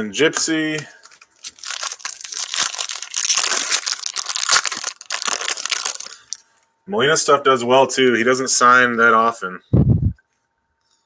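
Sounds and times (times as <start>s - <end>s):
foil wrapper tearing and crinkling: 1.0s - 6.4s.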